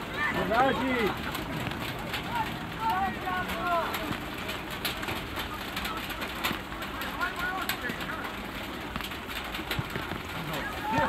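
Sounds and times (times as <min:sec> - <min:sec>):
young players shouting: 0:00.0 - 0:01.4, 0:02.2 - 0:04.2, 0:10.5 - 0:11.0
steady outdoor noise: 0:00.0 - 0:11.0.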